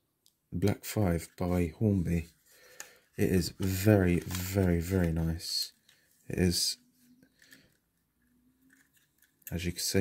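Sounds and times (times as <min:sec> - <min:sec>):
handling noise of model: 0:00.6 - 0:10.0.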